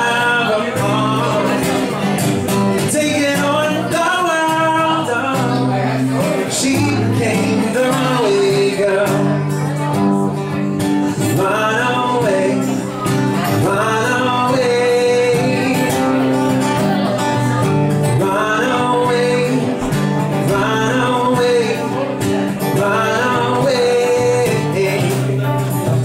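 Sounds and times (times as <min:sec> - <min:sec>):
acoustic guitar strumming: 0:00.0 - 0:26.0
man singing: 0:00.0 - 0:26.0.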